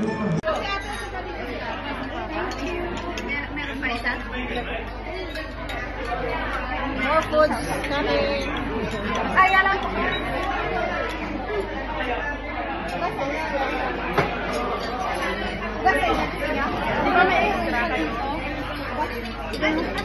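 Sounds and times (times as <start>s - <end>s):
chatter of people talking: 0.0s - 20.0s.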